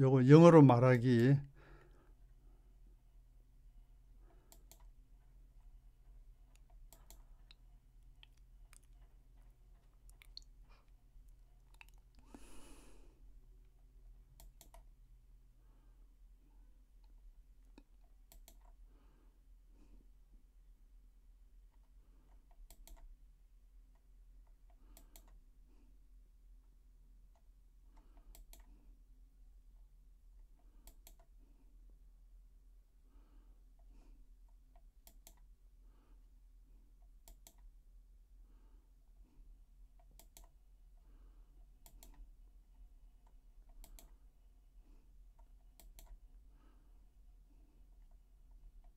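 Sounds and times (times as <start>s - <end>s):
low steady hum: 0.0s - 48.9s
computer clicks: 4.4s - 5.0s, 6.5s - 7.6s, 14.4s - 14.9s, 17.8s - 18.8s, 22.6s - 23.1s, 24.9s - 25.4s, 28.1s - 28.7s, 30.8s - 31.3s, 34.8s - 35.5s, 37.2s - 37.7s, 40.0s - 40.6s, 41.8s - 42.2s, 43.7s - 44.2s, 45.7s - 46.2s.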